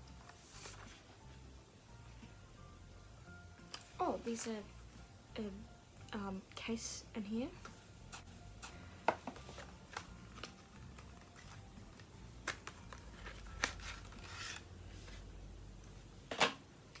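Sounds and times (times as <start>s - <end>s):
paper packaging rustling: 0.2s - 1.1s, 9.2s - 15.3s.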